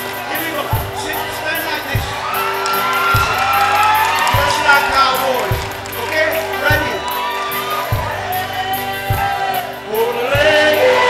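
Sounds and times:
bass drum beat: 0.0s - 11.0s
live country band music: 0.0s - 11.0s.

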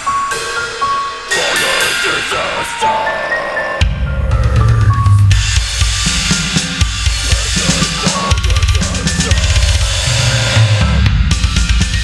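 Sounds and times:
low heavy guitar riff: 1.3s - 11.3s
fast metal drumming: 4.5s - 12.0s.

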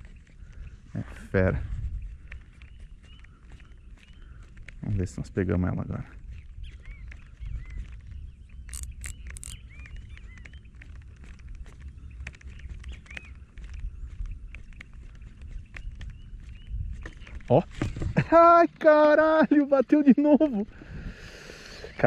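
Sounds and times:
sharp clicks: 8.6s - 13.8s.

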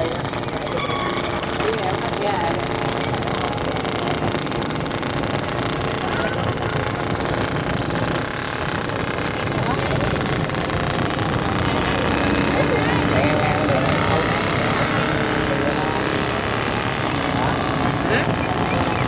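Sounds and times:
faint voices: 0.0s - 19.0s
model boat engines running: 0.0s - 19.0s.

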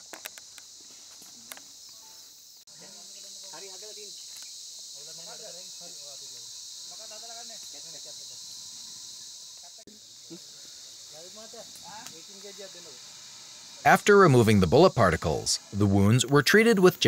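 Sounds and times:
high-pitched insect chorus: 0.0s - 17.0s.

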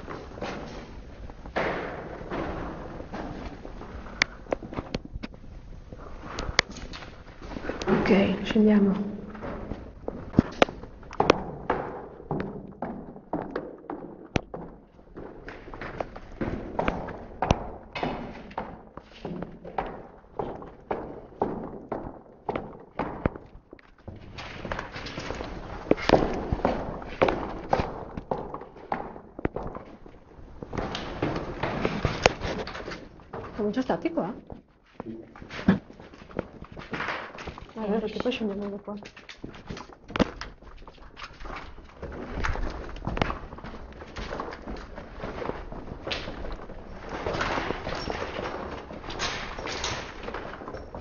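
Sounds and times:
footsteps down stairs: 0.0s - 51.0s.

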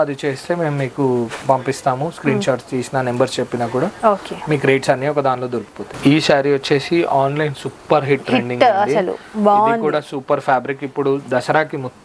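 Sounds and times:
person talking: 1.6s - 2.8s, 5.6s - 10.2s.

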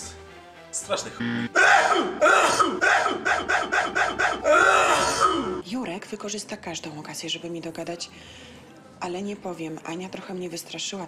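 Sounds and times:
man mock crying: 1.5s - 5.6s.

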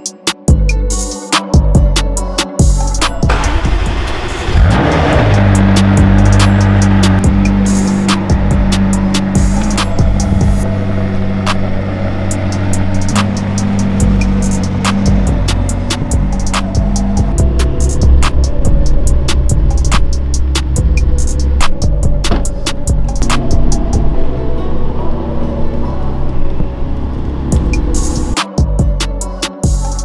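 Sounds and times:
background music with steady beat: 0.0s - 30.0s
sports car engine revving and idling: 2.9s - 28.4s.

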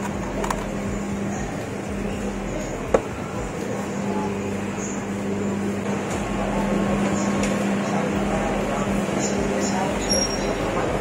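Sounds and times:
murmur of shoppers' voices: 0.0s - 11.0s
ventilation hum: 0.0s - 11.0s.

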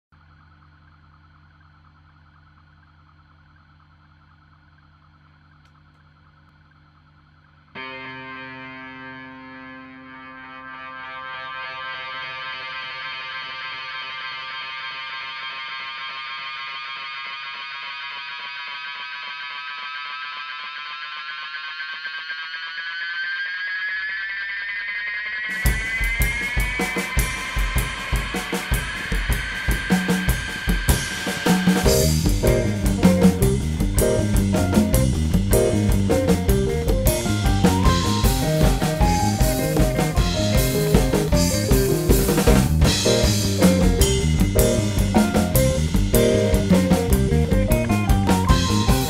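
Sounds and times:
faint steady hum: 0.1s - 10.0s
distorted electric guitar tone: 7.3s - 49.0s
drums: 25.4s - 49.0s.

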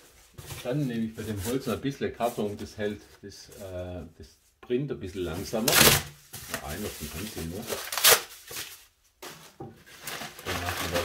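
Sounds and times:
plastic bag rustling: 0.0s - 3.7s, 5.3s - 11.0s.

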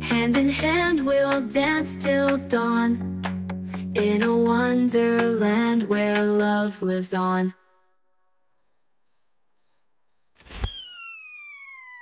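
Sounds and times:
falling synthesized glide: 10.4s - 12.0s.

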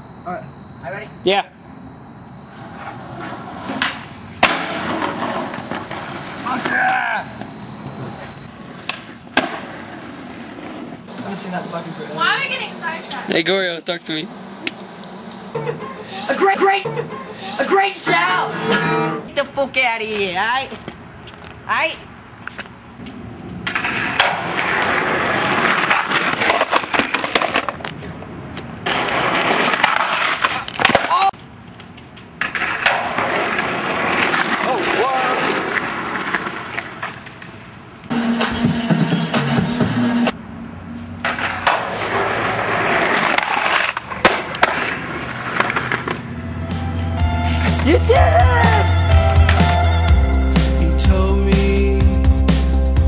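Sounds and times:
skateboard wheels rolling on concrete: 2.4s - 13.5s, 14.1s - 51.9s.

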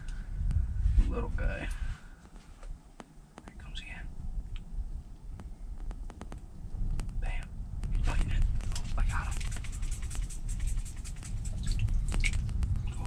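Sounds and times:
low rumble of wind: 0.0s - 13.0s
whispered words: 3.5s - 4.1s, 7.2s - 9.5s.

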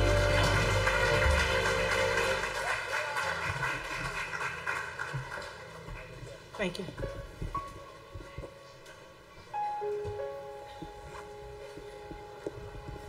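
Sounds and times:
deep bass: 0.0s - 2.7s
live band song ending: 0.0s - 2.7s.

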